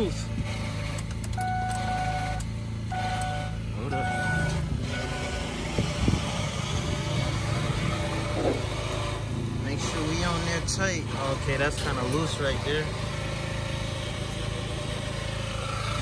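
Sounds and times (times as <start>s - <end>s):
low engine hum: 0.0s - 16.0s
car warning chime beeping: 1.3s - 5.5s.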